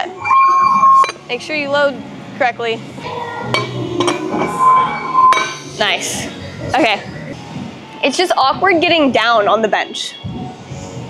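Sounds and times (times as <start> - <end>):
weight plate clinking on barbell: 5.3 - 5.6.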